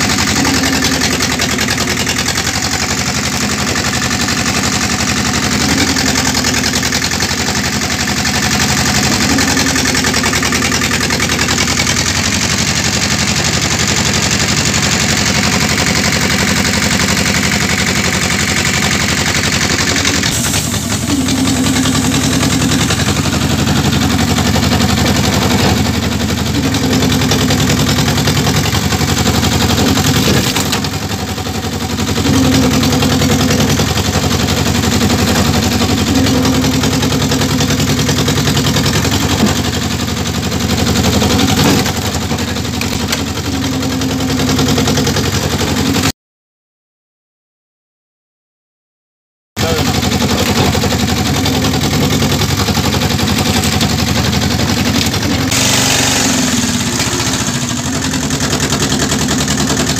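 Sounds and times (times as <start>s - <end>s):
firewood splitter motor running: 0.0s - 46.1s, 49.6s - 59.9s
strained higher motor tone: 0.0s - 46.1s, 49.6s - 59.9s.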